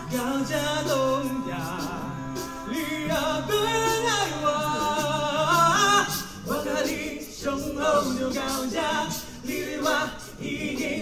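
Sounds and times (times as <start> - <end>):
a cappella group singing: 0.0 - 11.0.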